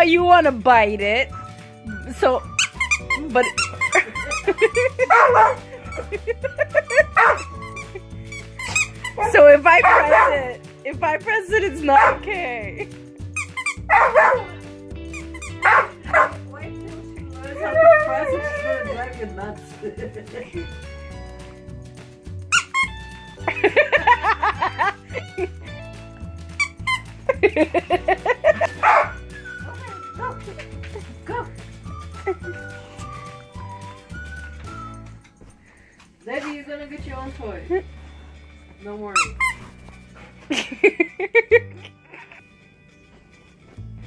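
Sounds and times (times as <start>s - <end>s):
music: 0.0s - 44.0s
squeaky toy squeaking: 2.5s - 10.4s, 13.3s - 14.4s, 15.0s - 16.3s, 22.5s - 23.3s, 26.5s - 27.3s, 39.1s - 39.8s
small dog barking and yipping: 3.6s - 6.0s, 6.9s - 7.7s, 9.8s - 10.4s, 13.7s - 14.6s, 15.2s - 16.4s, 28.8s - 29.2s.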